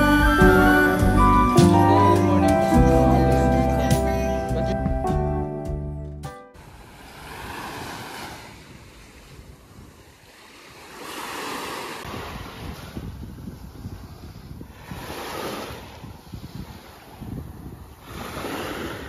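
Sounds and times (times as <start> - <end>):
background music: 0.0 - 6.6
small waves washing on sand: 6.6 - 19.0
wind buffeting microphone: 6.8 - 10.4, 12.0 - 19.0.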